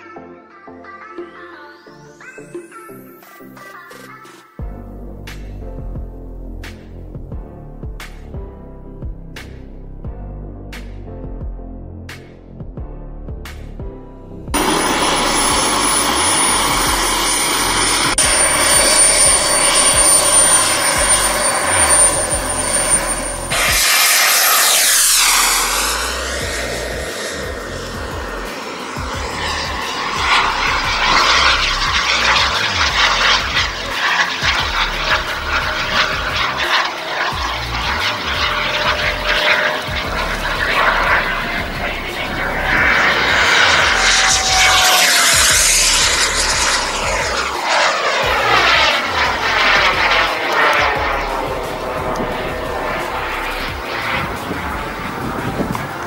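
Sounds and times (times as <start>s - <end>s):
jet turbine hiss and whine: 14.6s - 56.0s.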